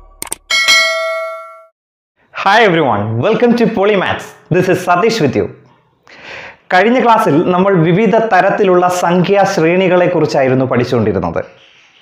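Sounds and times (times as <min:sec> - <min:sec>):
bright notification bell ding: 0:00.5 - 0:01.7.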